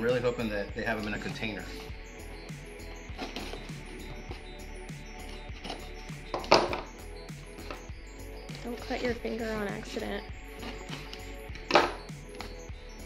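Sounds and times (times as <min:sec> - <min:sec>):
background music with beat: 0:00.0 - 0:13.0.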